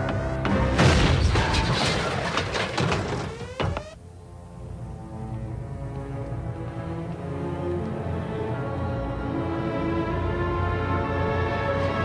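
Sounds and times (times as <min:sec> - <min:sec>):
dense rapid crackling and knocking: 0:00.7 - 0:04.0.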